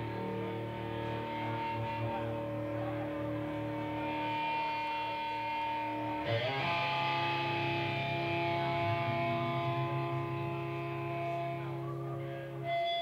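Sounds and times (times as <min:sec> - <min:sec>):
amplifier hum: 0:00.0 - 0:13.0
electric guitar sustained tones: 0:00.0 - 0:13.0.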